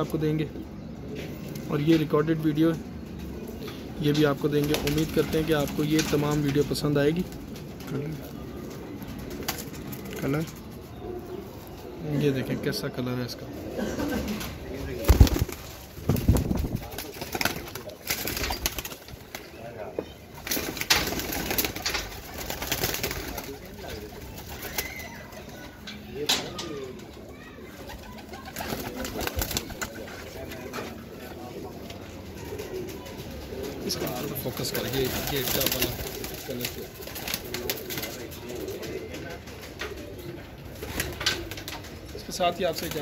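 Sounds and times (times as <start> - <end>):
pigeons cooing: 0.0 - 43.0
birds scuffling and clicking: 2.8 - 12.0, 14.2 - 27.2, 27.8 - 43.0.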